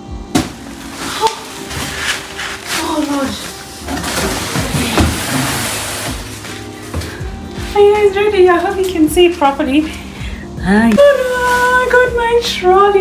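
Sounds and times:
background music: 0.0s - 13.0s
bubble wrap rustling: 0.4s - 9.6s, 10.9s - 12.2s.

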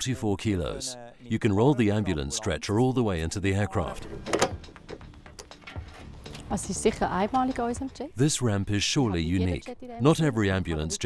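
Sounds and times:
soft background music: 0.0s - 11.0s
metal clicks and knocks: 4.1s - 6.4s.

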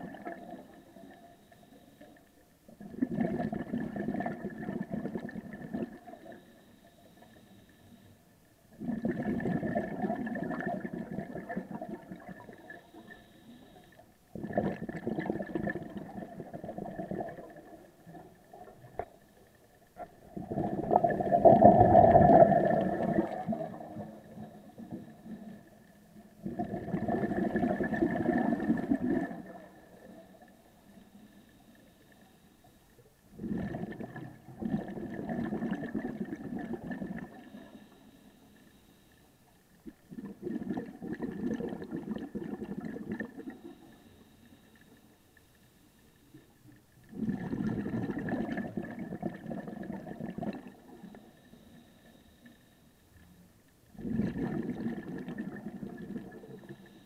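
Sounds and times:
underwater regulator bubbles: 0.0s - 8.0s, 8.7s - 32.5s, 33.3s - 38.0s, 39.7s - 45.0s, 46.3s - 52.3s, 53.9s - 57.0s.

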